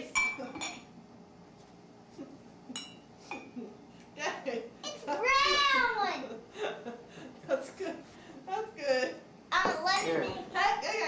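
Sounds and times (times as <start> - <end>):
ceramic mug clinking: 2.8 - 3.5.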